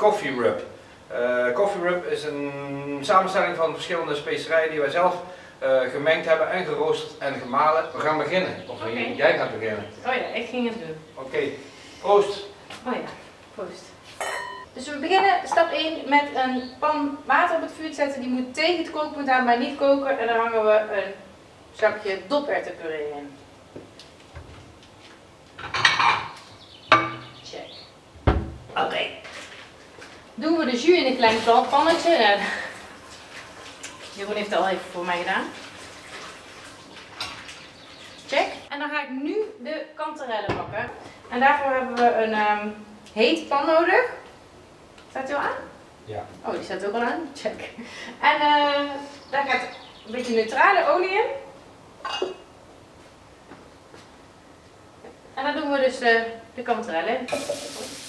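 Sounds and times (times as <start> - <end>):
hiss of pans heating: 11.5 - 14.5, 57.2 - 58.0
pot and utensils clattering: 14.2 - 14.6, 25.6 - 27.4, 57.3 - 57.9
kitchenware clink: 14.2 - 14.7, 25.6 - 27.3.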